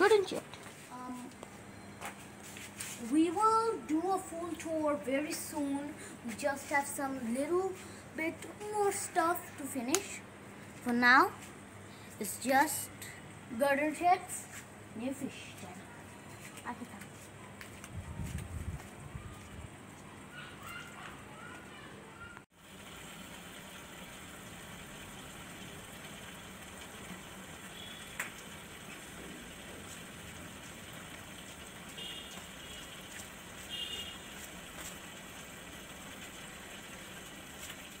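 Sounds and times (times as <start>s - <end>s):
aquarium bubbling and trickling: 22.6s - 38.0s.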